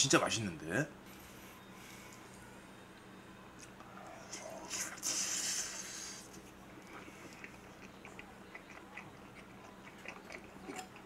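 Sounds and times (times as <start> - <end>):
faint steady hum: 0.0 - 11.0
man slurping noodles: 4.3 - 6.4.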